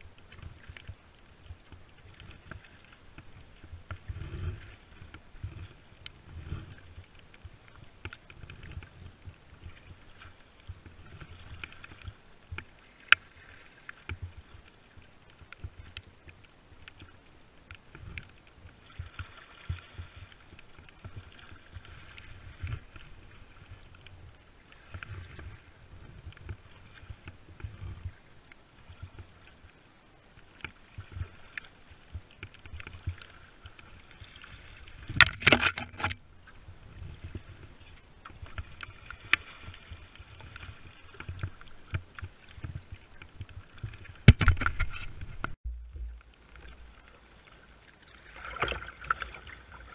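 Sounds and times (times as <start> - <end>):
light hiss of water: 0.0 - 35.2
paddle strokes splashing: 0.0 - 49.9
clicks and knocks on boat: 35.0 - 36.2, 40.4 - 46.9
splashing: 38.7 - 49.9
dull low knocks: 45.3 - 47.0.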